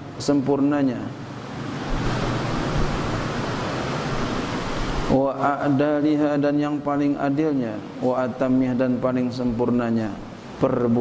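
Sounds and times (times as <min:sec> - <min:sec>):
steady rushing hiss: 0:01.2 - 0:11.0.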